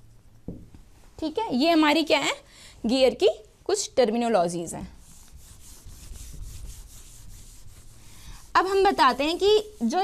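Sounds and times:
whiteboard eraser scrubbing: 5.0 - 10.0.

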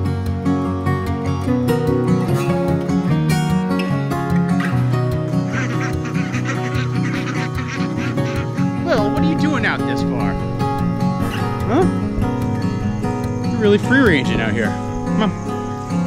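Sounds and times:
acoustic guitar music: 0.0 - 16.0
ducks quacking: 4.5 - 10.4.

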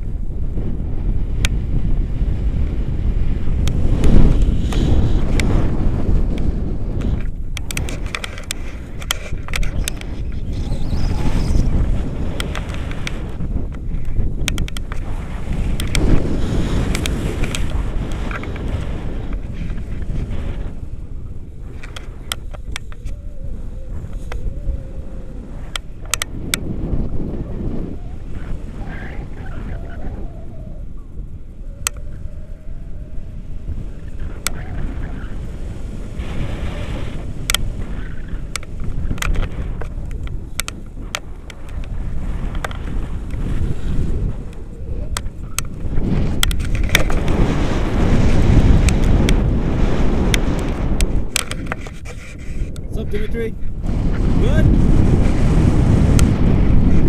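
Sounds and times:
wind buffeting microphone: 0.0 - 57.0
sharp clicks: 6.3 - 11.7, 12.3 - 16.2, 16.8 - 19.8, 25.6 - 26.6, 31.8 - 32.3, 37.4 - 43.4, 44.5 - 47.4, 50.2 - 52.9.

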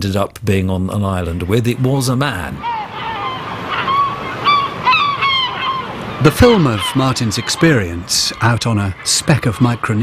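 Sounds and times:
birds calling: 1.0 - 10.0
surf washing: 1.0 - 10.0.

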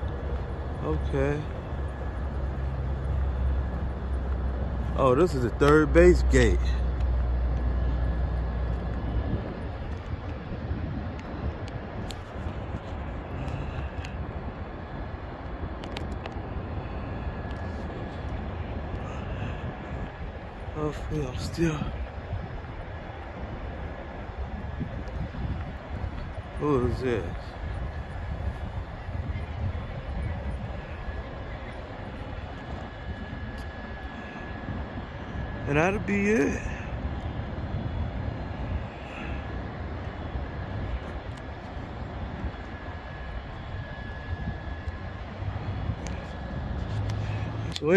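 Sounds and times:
wind buffeting microphone: 0.0 - 47.9.

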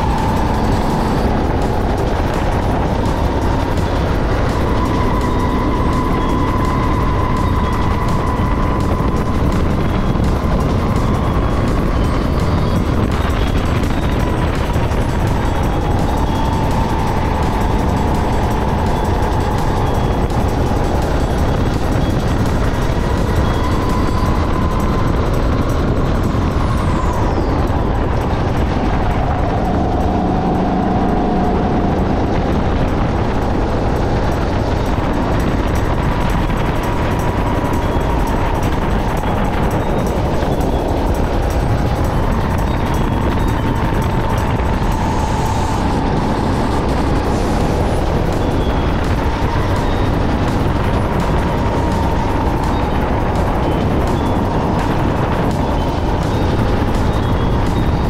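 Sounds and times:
go-kart engine running hard: 0.0 - 58.0
wind buffeting camera: 0.0 - 58.0.

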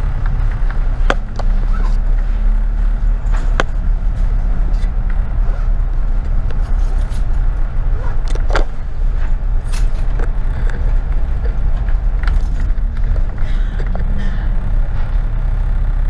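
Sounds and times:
bodywork clicks and rattles: 0.0 - 15.5
bus engine and road hum: 0.0 - 16.0.

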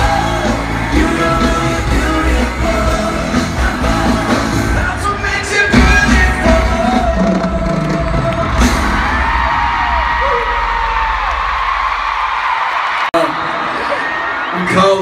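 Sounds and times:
person singing: 0.0 - 9.0
heavy drum beat: 0.0 - 11.5
live pop band music: 0.0 - 11.6
crowd screaming and cheering: 0.0 - 15.0.

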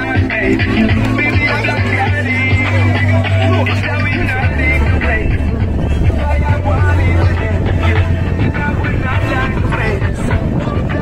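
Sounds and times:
crowd voices talking and calling: 0.0 - 11.0
loud music: 0.0 - 11.0
low rumble: 0.9 - 11.0.

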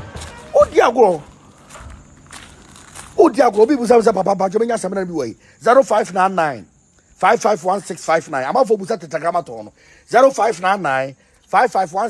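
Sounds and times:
man's voice trailing off: 0.5 - 1.2.

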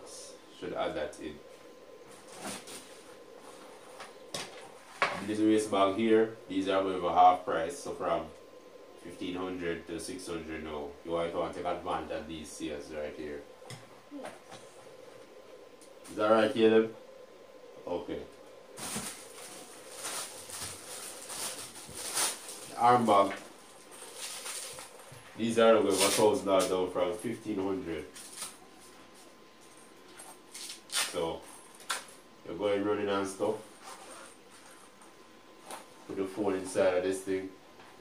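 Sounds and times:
fabric bag rustling: 18.8 - 25.1.

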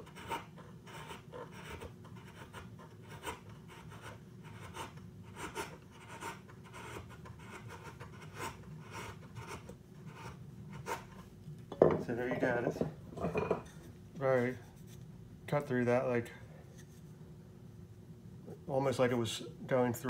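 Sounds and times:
chisel scraping wood: 0.0 - 11.2.

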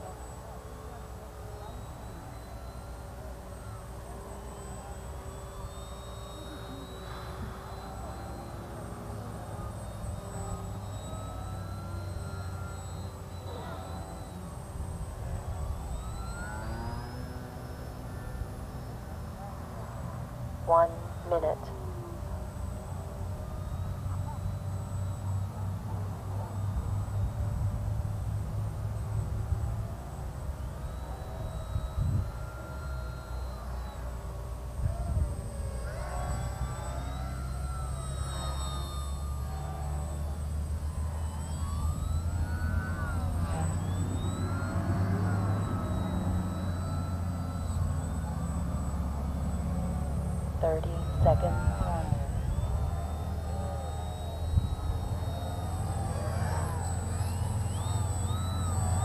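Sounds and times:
small electric motor whine: 0.0 - 59.0
wind rumble on microphone: 30.7 - 32.5, 34.7 - 36.0
steady low rumble: 45.7 - 59.0.

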